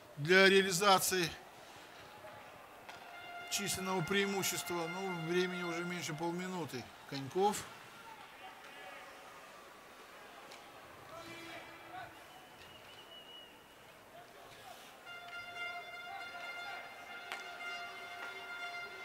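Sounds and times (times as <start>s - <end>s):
low crowd noise: 0.0s - 19.0s.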